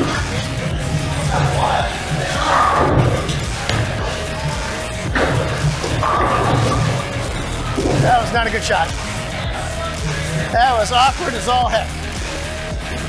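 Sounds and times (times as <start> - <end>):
hubbub of bowling lanes: 0.0 - 13.0
bowling ball rolling down lane: 0.8 - 9.4
pins crashing: 2.4 - 9.2.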